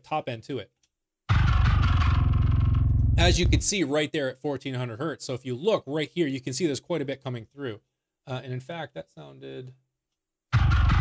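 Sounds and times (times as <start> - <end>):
distorted bass guitar picking: 1.3 - 3.7, 10.5 - 11.0.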